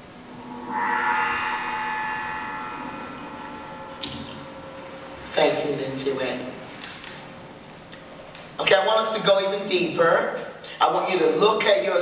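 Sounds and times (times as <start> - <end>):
gong-like metallic tone ringing: 0.0 - 7.6.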